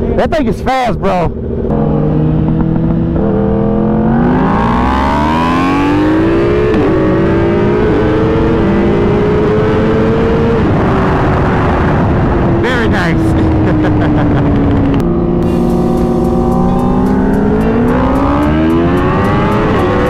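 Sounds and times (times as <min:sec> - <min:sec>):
motorcycle engine accelerating: 0:01.2 - 0:20.0
wind rushing past microphone: 0:06.1 - 0:15.4.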